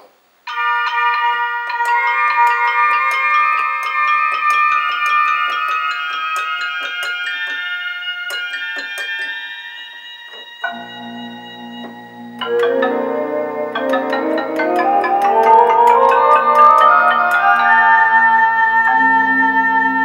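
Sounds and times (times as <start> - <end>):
synthesizer notes ringing: 0.5 - 20.0
low sustained synthesizer notes: 10.1 - 20.0.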